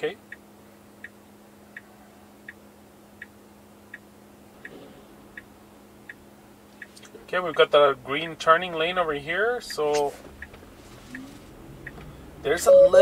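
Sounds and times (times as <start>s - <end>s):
low cabin hum: 0.0s - 13.0s
turn signal ticking: 0.0s - 13.0s.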